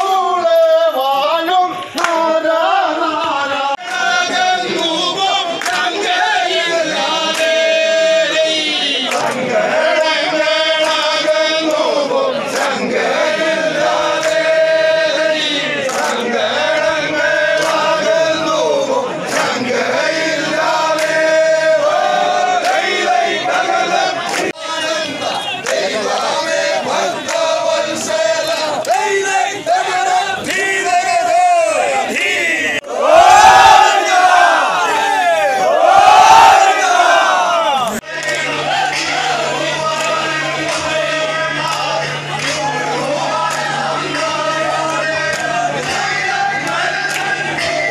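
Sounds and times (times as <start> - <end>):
men chanting and singing in unison: 0.0 - 47.9.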